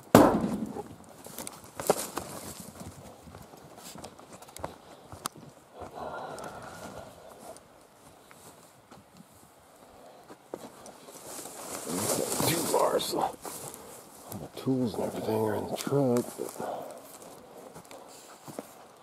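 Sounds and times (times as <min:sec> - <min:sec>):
footsteps on dry forest floor: 0:00.4 - 0:19.0.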